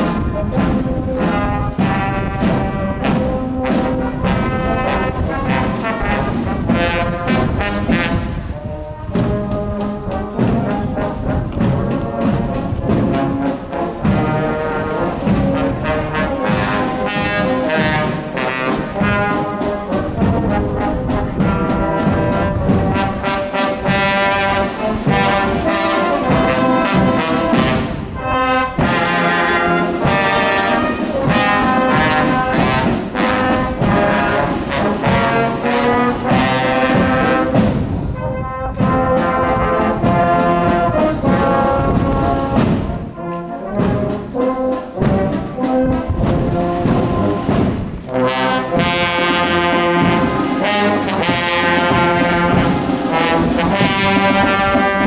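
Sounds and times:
marching brass band playing: 0.0s - 55.0s.

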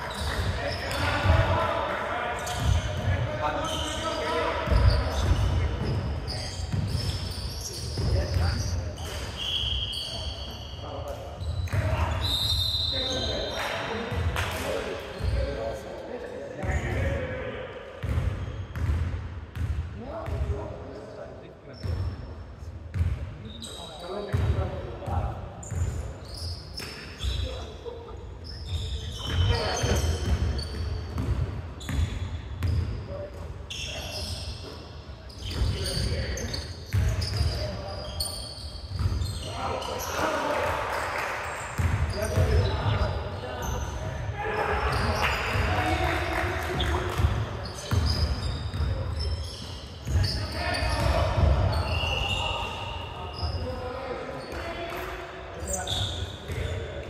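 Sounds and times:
sneaker squeaks: 0.0s - 1.4s, 2.4s - 15.8s, 18.0s - 20.4s, 21.7s - 40.6s, 41.4s - 57.0s.

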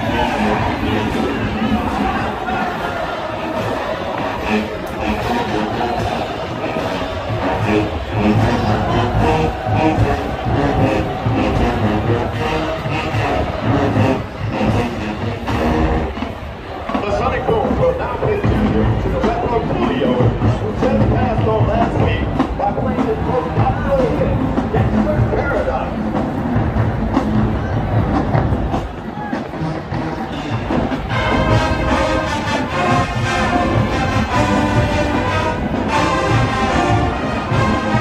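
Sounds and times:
marching band brass and drums: 0.0s - 38.0s.

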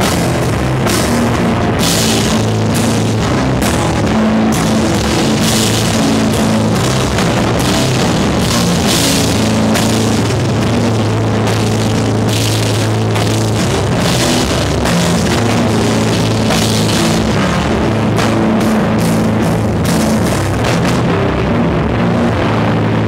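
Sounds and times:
distorted guitar and bass: 0.0s - 23.0s
drums: 0.0s - 23.0s.

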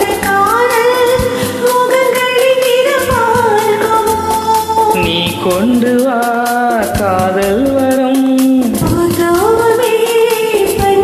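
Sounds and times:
karaoke backing track: 0.0s - 11.0s
woman singing: 0.0s - 11.0s.

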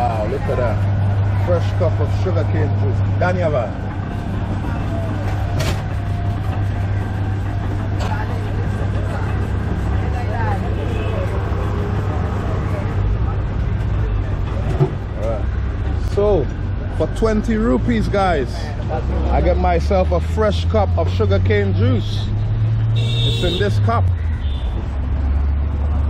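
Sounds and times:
voices: 0.0s - 22.4s.

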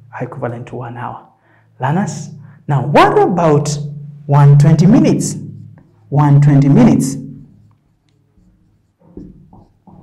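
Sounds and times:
person speaking: 0.0s - 8.0s
marker pen writing on whiteboard: 4.4s - 10.0s.

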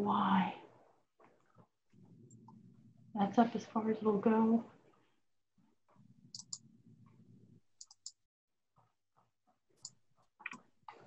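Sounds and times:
faint low hum: 0.0s - 8.2s
computer mouse clicks: 6.3s - 8.2s.

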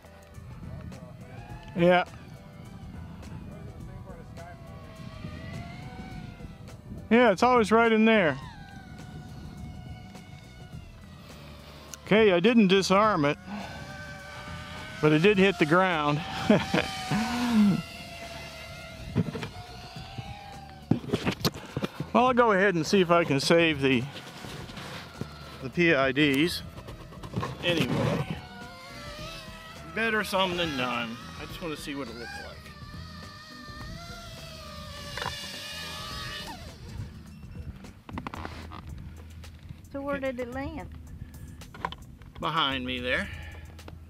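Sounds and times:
distant electric motor whine: 0.0s - 39.5s
wind buffeting microphone: 0.4s - 11.5s, 17.8s - 30.4s, 32.7s - 42.4s.

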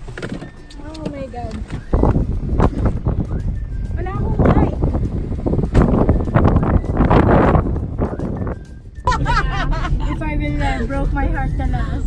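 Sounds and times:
wind buffeting microphone: 0.8s - 12.0s.

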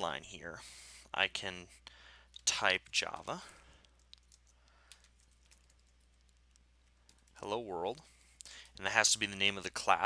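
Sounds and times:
faint keyboard typing: 2.2s - 8.9s.

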